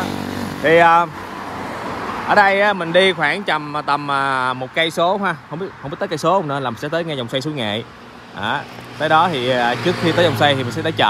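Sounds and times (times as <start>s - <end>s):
car tyre noise: 0.0s - 11.0s
motorbike passing: 0.0s - 11.0s.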